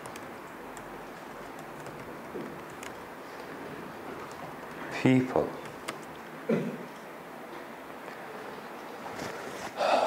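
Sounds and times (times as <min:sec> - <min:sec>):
keystrokes on computer keyboard: 0:00.0 - 0:03.1, 0:05.4 - 0:06.3
room hiss: 0:00.0 - 0:10.0.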